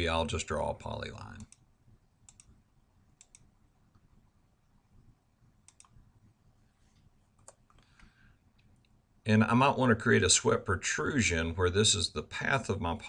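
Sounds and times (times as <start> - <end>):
computer mouse clicks: 2.3 - 2.6, 3.2 - 4.0, 5.6 - 6.0, 7.0 - 9.0.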